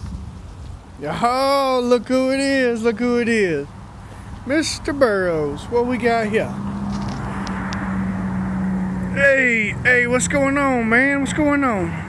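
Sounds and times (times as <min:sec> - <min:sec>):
outdoor noise: 0:00.0 - 0:12.0.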